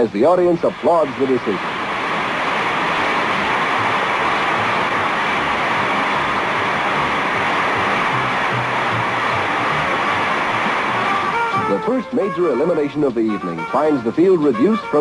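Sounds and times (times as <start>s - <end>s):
faint music: 3.1s - 15.0s
audience applauding: 3.2s - 11.8s.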